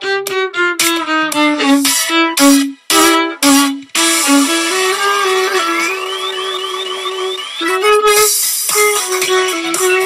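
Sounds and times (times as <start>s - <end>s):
pop backing track: 0.0s - 10.0s
violin long note: 0.0s - 10.0s.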